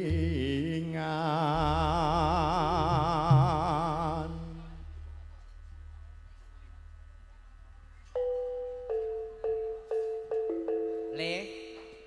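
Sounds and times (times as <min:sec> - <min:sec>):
faint low hum: 0:00.0 - 0:12.0
bell-like keyboard melody: 0:08.2 - 0:12.0.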